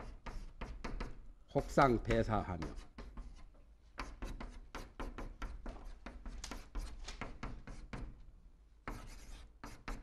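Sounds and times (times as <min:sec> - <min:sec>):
chalk writing on chalkboard: 0:00.0 - 0:08.2, 0:08.8 - 0:10.0.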